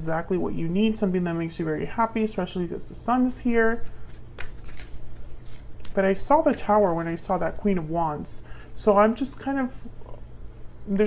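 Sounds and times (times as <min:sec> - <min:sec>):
cards being shuffled: 0:03.8 - 0:06.7.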